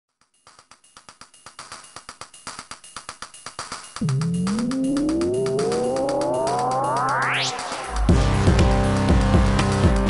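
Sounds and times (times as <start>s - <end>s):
clicky drum machine beat: 1.2s - 8.7s.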